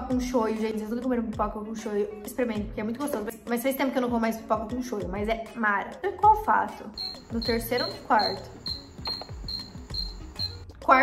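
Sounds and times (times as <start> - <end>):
short high-pitched electronic beeps: 7.0 - 10.6.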